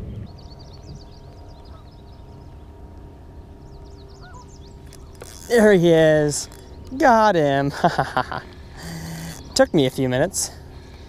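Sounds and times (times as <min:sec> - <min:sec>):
faint low hum: 0:00.0 - 0:11.0
small birds twittering: 0:00.0 - 0:11.0.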